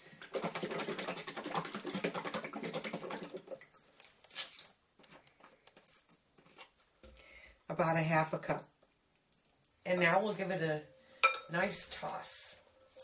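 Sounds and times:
liquid sloshing in shaken bottle: 0.0s - 4.7s
faint handling sounds: 3.8s - 7.2s.

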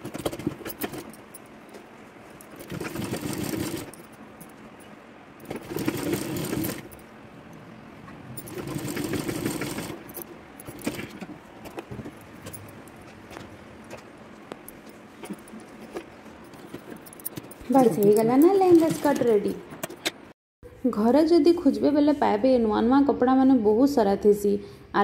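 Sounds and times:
sewing machine stitching: 0.0s - 1.1s, 2.5s - 4.0s, 5.4s - 6.9s, 8.4s - 11.8s, 16.7s - 19.9s
fabric rustling: 0.0s - 7.0s.

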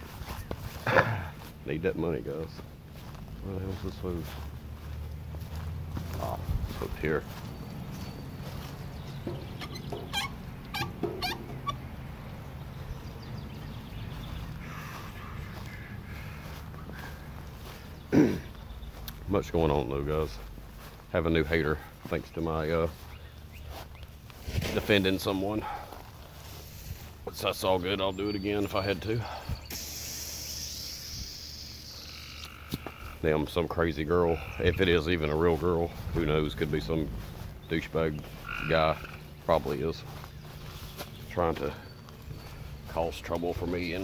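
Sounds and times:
high-pitched animal calls: 9.3s - 11.9s, 14.6s - 17.3s, 29.7s - 33.2s, 38.3s - 39.3s
steady low hum: 29.2s - 44.0s
hose nozzle spraying water: 29.7s - 31.0s.

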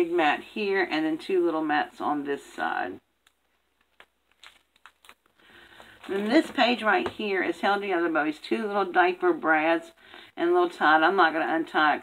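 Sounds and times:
album page rustling: 3.2s - 7.3s.

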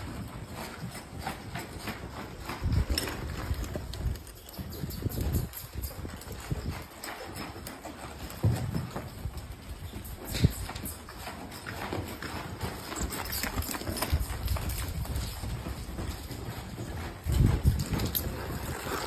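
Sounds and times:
horse hooves thudding on sand: 0.0s - 19.0s.

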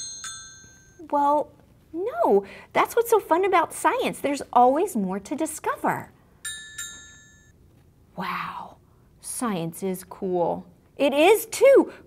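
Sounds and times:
bright bell-like chime: 0.0s - 1.0s, 6.4s - 7.5s.

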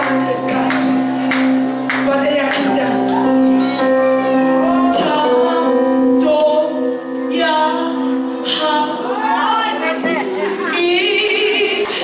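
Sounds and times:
electric keyboard chords: 0.0s - 12.0s
woman singing into microphone: 0.0s - 12.0s.

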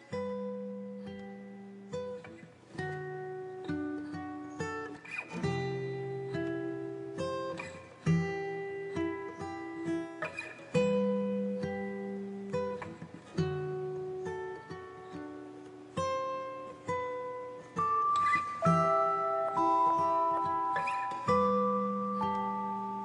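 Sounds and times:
acoustic guitar strumming chords: 0.0s - 23.0s.

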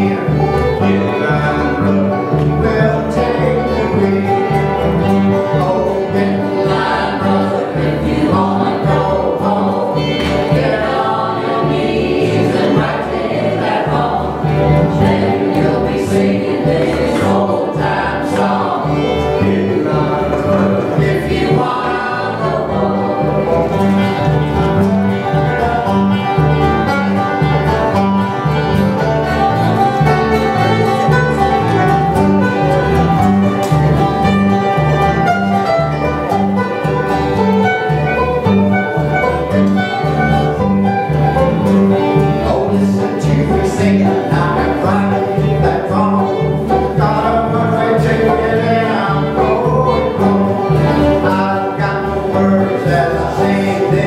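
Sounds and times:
several voices singing together: 0.0s - 26.3s, 42.2s - 54.0s
alternating bass line: 0.0s - 54.0s
strummed strings: 0.0s - 54.0s.

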